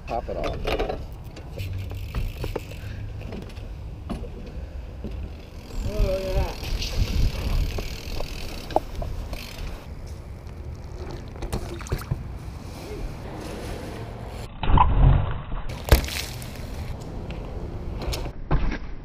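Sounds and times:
bike knocks and rattles: 0.3 - 9.9, 10.8 - 12.3, 15.7 - 18.3
wind rumble on microphone: 5.6 - 9.9.

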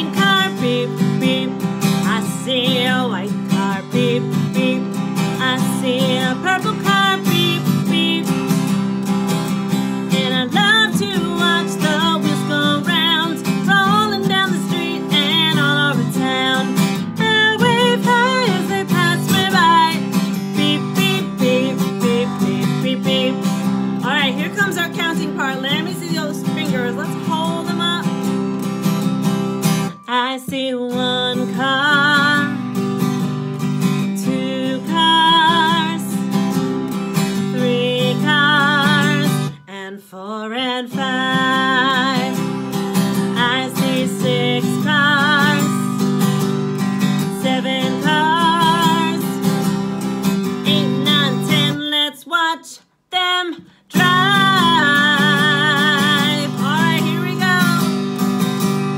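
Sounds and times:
woman singing with vibrato: 0.0 - 28.5, 29.8 - 58.2
strummed acoustic guitar: 0.0 - 52.1, 53.2 - 58.9.

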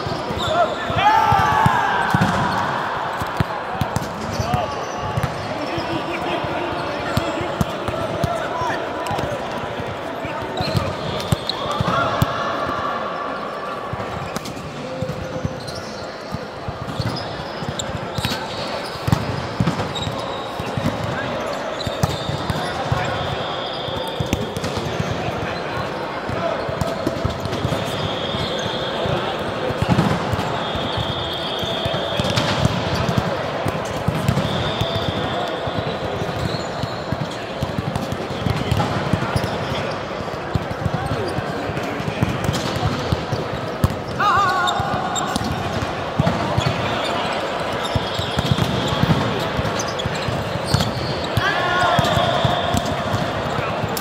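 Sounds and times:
sneakers squealing on floor: 0.0 - 9.4, 10.2 - 12.9, 13.5 - 54.0
players shouting: 0.2 - 13.8, 44.1 - 50.3, 51.0 - 54.0
volleyball strikes and thuds: 1.3 - 2.6, 45.2 - 46.8, 52.0 - 54.0.

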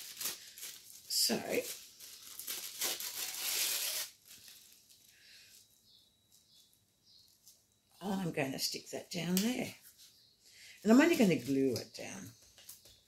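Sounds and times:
paper napkin tearing and crinkling: 0.0 - 4.8.

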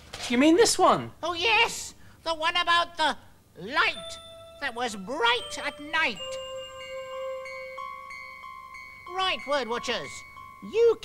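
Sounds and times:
soft chime-like notes: 3.8 - 11.0.

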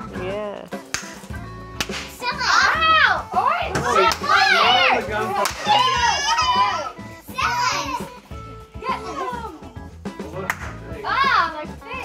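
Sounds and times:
party poppers popping: 0.8 - 2.2
children squealing: 5.6 - 8.0.

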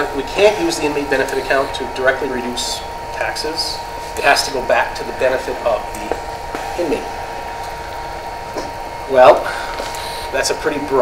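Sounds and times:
low hum: 0.0 - 10.2.

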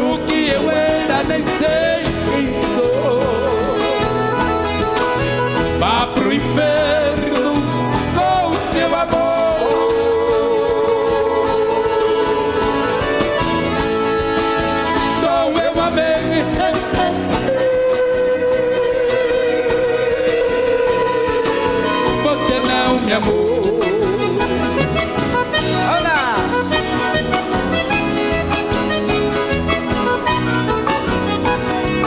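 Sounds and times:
live band with guitars and beat: 0.0 - 32.0.

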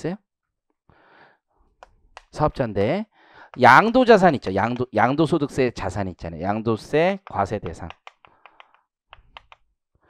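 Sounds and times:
chalk tapping on chalkboard: 6.8 - 9.6.

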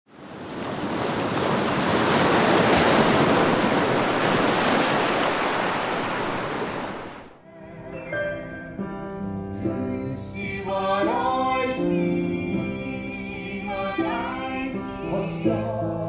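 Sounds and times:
ocean wave washing in and out: 0.1 - 7.4
music with held notes: 7.5 - 16.0.

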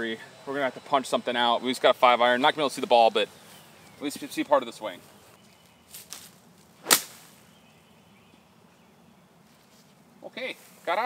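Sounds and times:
golf club striking ball: 6.8 - 7.4.

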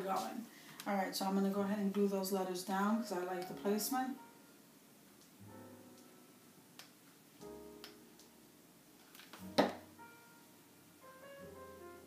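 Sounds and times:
quiet piano music: 1.0 - 12.0.

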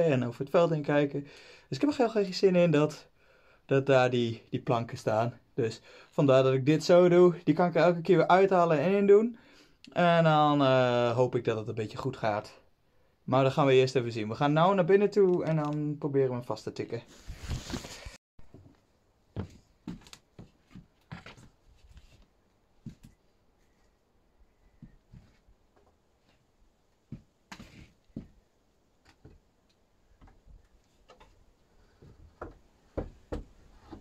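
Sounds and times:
wooden slats knocking: 32.4 - 34.0.

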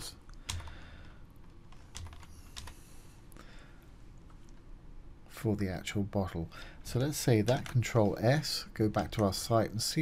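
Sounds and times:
computer keyboard keystrokes: 0.4 - 0.8, 1.4 - 2.8.

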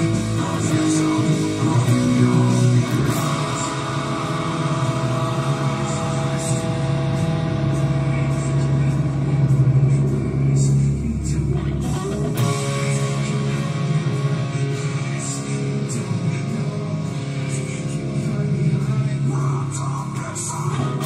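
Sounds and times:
electric guitar: 0.0 - 21.0
rock band playing: 0.0 - 21.0.

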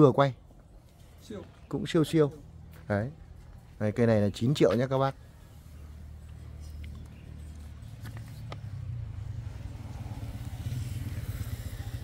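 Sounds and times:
small engine running: 8.7 - 12.0.

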